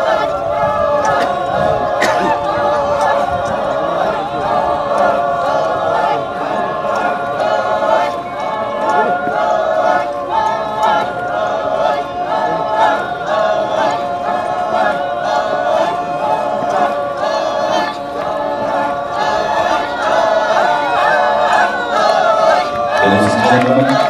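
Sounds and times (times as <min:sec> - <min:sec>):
group chanting in rhythm: 0:00.0 - 0:24.0.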